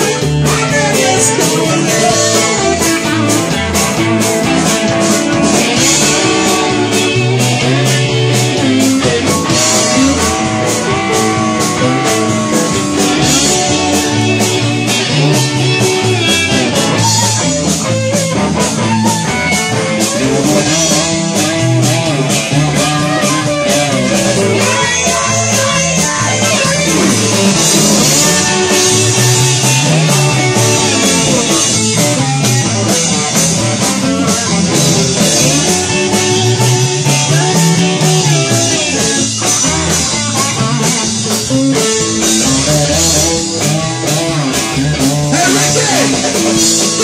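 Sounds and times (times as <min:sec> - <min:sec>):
blues-rock band playing: 0:00.0 - 0:47.0
electric guitar bending notes: 0:00.0 - 0:47.0.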